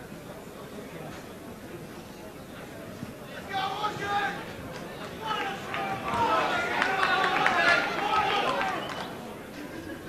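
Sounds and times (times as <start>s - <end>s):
crowd talking and shouting: 0.0s - 10.0s.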